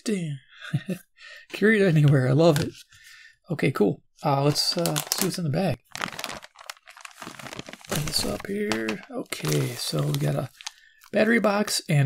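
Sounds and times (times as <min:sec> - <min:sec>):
plastic bag crinkling: 0:04.5 - 0:11.3.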